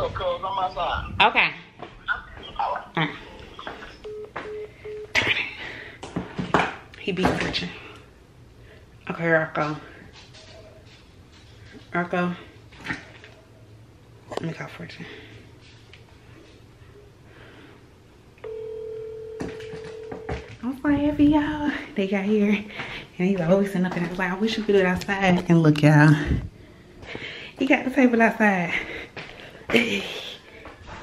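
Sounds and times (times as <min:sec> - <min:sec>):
mobile phone beeps: 0:04.0 - 0:05.2, 0:18.4 - 0:20.5.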